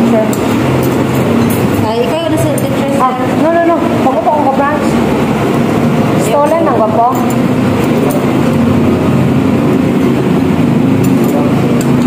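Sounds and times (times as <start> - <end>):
restaurant babble of voices: 0.0 - 12.0.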